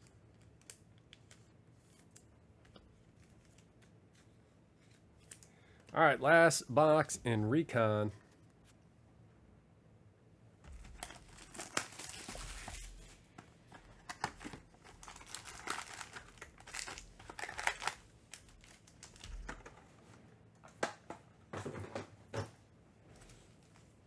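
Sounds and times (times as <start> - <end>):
foil wrappers crinkling: 10.7 - 19.7.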